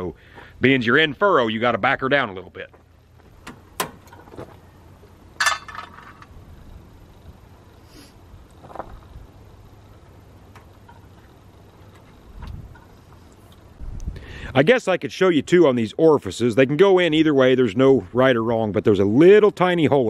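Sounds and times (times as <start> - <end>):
clinking rattle: 5.4 - 6.4.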